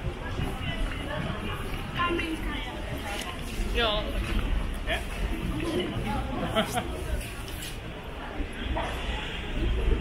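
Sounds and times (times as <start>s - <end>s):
passers-by talking: 0.0s - 10.0s.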